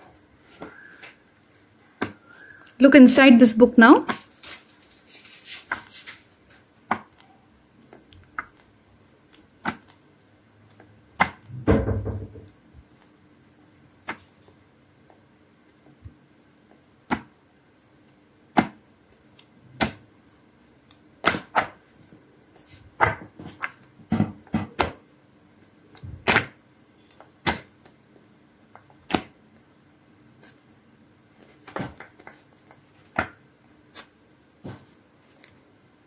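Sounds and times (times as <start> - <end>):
book pages flipping: 4.1 - 7.3, 7.9 - 10.0, 18.6 - 23.9, 30.4 - 30.7, 31.3 - 35.6
paper pages turning: 4.1 - 7.3.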